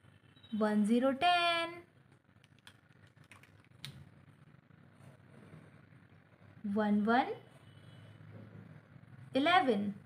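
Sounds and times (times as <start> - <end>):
markers clicking and tapping: 2.1 - 4.0.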